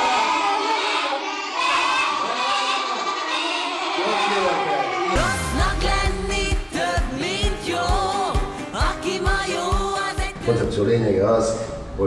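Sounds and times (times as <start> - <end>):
children calling out together: 0.0 - 5.2.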